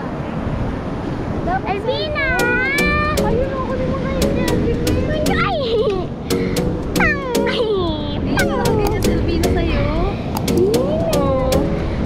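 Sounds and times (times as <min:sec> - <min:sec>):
evenly spaced clicks: 0:02.4 - 0:03.5, 0:06.3 - 0:07.7, 0:08.4 - 0:09.6, 0:10.4 - 0:12.0.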